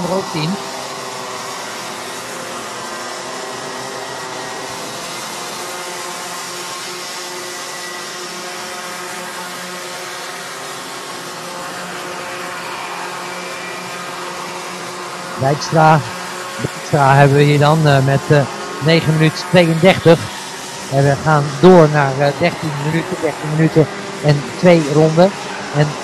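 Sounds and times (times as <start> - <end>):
racing kart engines buzzing: 0.0 - 26.0.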